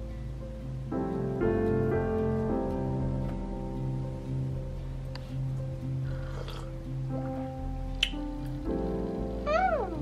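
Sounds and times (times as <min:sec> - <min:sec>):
soft background music: 0:00.0 - 0:10.0
meow-like call: 0:09.5 - 0:10.0.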